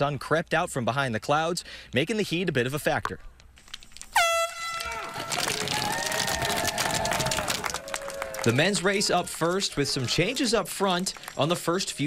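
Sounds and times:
poles clicking on pavement: 0:03.0 - 0:08.3
air horn blast: 0:04.2 - 0:05.1
crowd cheering: 0:04.2 - 0:12.0.

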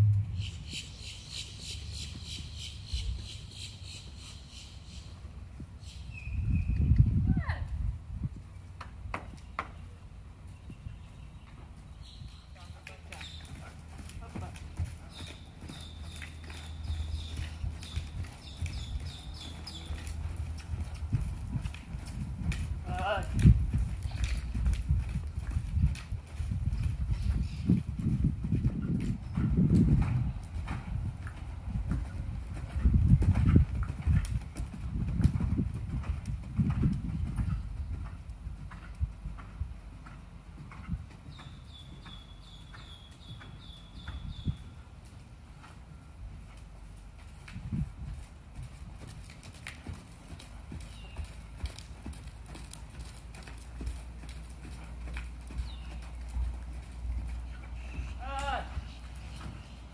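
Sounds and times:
horse hoofbeats on sand: 0:00.0 - 0:03.4, 0:10.6 - 0:59.9.

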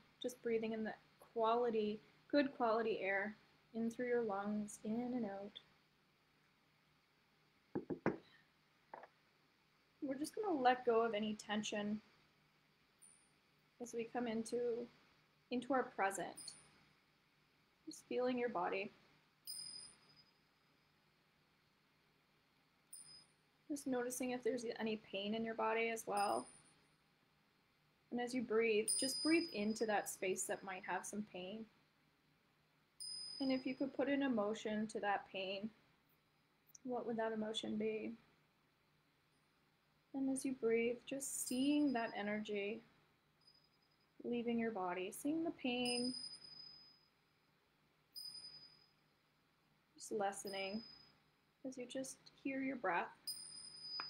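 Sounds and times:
tingsha cymbals ringing: 0:19.4 - 0:20.4, 0:22.9 - 0:23.3, 0:26.1 - 0:26.6, 0:28.8 - 0:29.9, 0:33.0 - 0:33.7, 0:45.8 - 0:47.1, 0:48.1 - 0:49.0, 0:50.1 - 0:51.1, 0:53.2 - 0:54.0.

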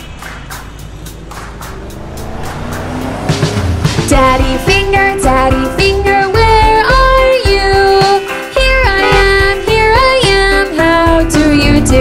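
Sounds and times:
cartoon car engine rumble: 0:00.0 - 0:07.0, 0:10.8 - 0:12.0
background music with steady beat: 0:00.0 - 0:12.0.

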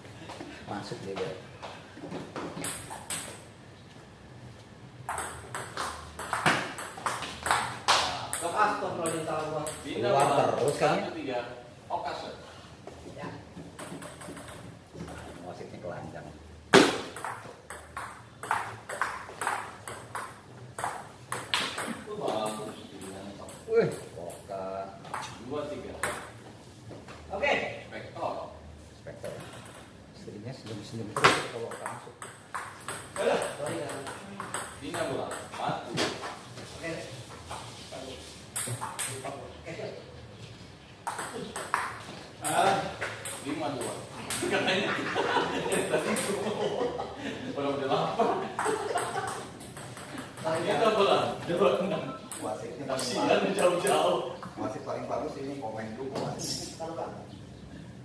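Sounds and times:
men talking: 0:00.2 - 0:01.7, 0:07.9 - 0:12.7, 0:21.8 - 0:26.1, 0:27.3 - 0:32.2, 0:33.1 - 0:37.3, 0:42.4 - 0:57.8
table tennis ball hits: 0:05.0 - 0:10.7, 0:13.8 - 0:15.2, 0:16.7 - 0:24.0, 0:31.2 - 0:36.3, 0:41.0 - 0:44.6
ball bouncing on table: 0:05.1 - 0:10.4, 0:13.6 - 0:15.3, 0:16.7 - 0:22.4, 0:31.2 - 0:36.3, 0:41.0 - 0:44.5.

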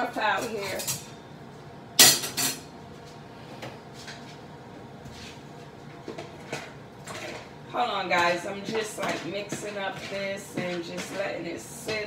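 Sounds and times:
kitchenware clanks: 0:08.1 - 0:12.0.

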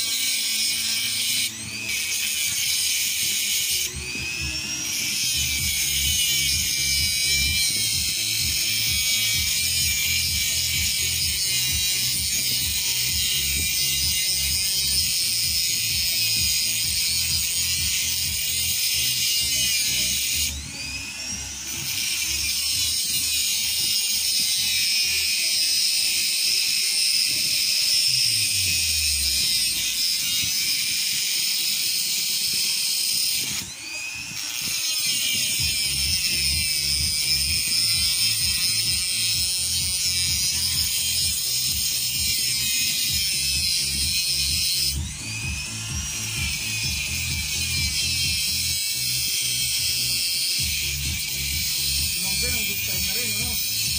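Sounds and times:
rotary tool grinding steel: 0:00.0 - 0:53.9.

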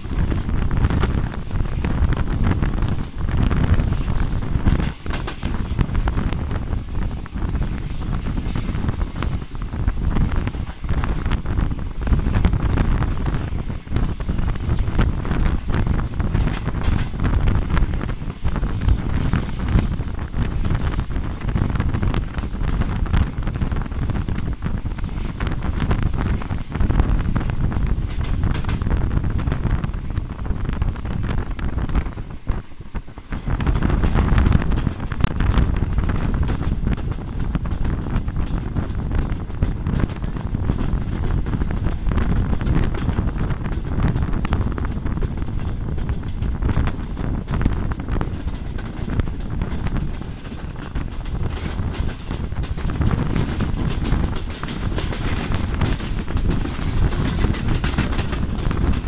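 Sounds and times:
train coaches rumbling on track: 0:00.0 - 0:59.0
wind buffeting microphone: 0:00.0 - 0:59.0.

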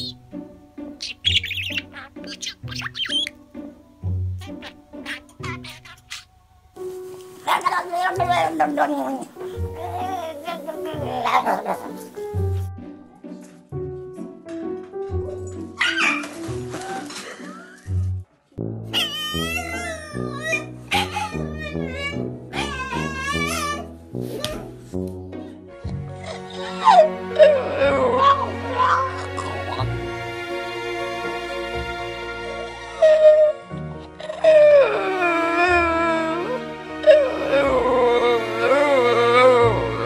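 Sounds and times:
background music: 0:00.0 - 0:40.0
budgerigar chattering: 0:01.0 - 0:03.4, 0:04.4 - 0:06.3
dog howling: 0:34.2 - 0:40.0.

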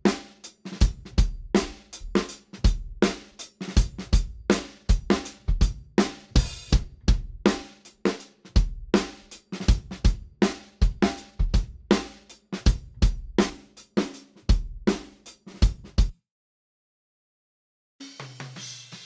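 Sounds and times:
drum kit playing a steady beat: 0:00.0 - 0:16.2, 0:18.0 - 0:19.0.

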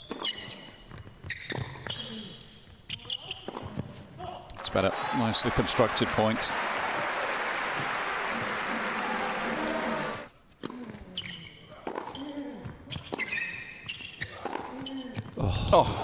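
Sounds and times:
shoes squeaking: 0:00.0 - 0:04.2, 0:10.2 - 0:15.4
crowd applauding: 0:04.7 - 0:10.3.

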